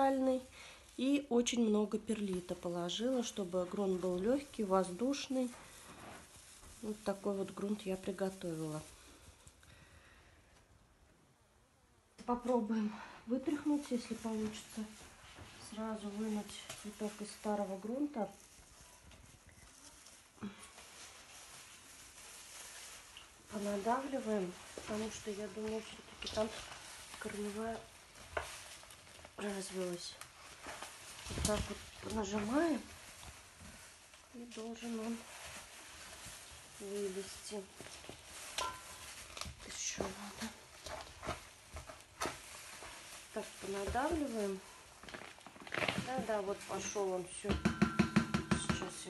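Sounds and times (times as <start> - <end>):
rustles: 0.0 - 10.6, 12.3 - 47.5
gloved hand handling plant pot: 1.6 - 9.5, 13.5 - 49.0.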